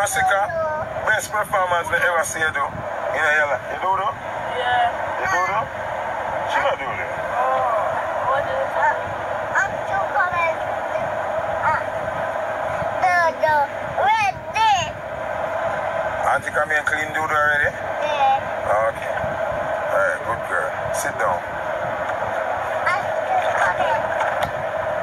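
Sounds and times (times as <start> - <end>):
child talking: 0.0 - 0.9, 9.6 - 11.9, 13.0 - 15.0, 18.0 - 18.5, 22.8 - 24.1
man talking: 0.0 - 4.2, 5.2 - 5.7, 6.5 - 7.6, 16.2 - 17.8, 18.6 - 19.2, 19.9 - 21.4.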